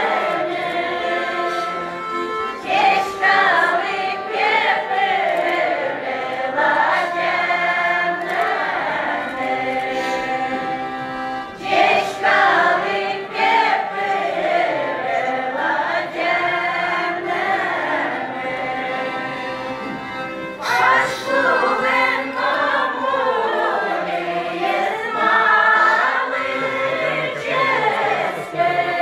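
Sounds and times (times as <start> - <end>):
button accordion: 0.0 - 29.0
choir singing folk song: 0.0 - 29.0.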